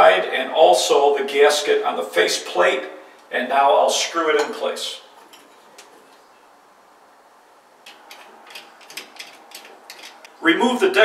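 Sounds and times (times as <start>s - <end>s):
faint room hiss: 0.0s - 11.0s
screwdriver clicking and scraping: 7.8s - 10.3s.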